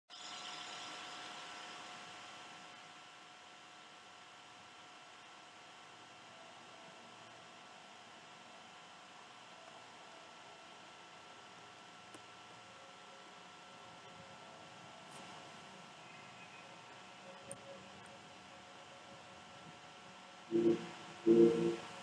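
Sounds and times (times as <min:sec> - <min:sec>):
faint steady hiss: 0:00.1 - 0:22.0
thin steady tones: 0:00.1 - 0:22.0.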